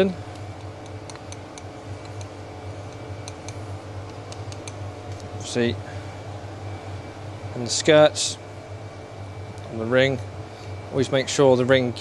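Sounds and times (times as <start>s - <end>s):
low workshop hum: 0.0s - 12.0s.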